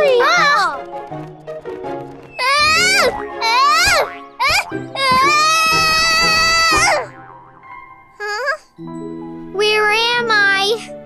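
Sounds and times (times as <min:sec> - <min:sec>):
soft background music: 0:00.0 - 0:11.0
cartoon chick screaming: 0:02.4 - 0:07.1.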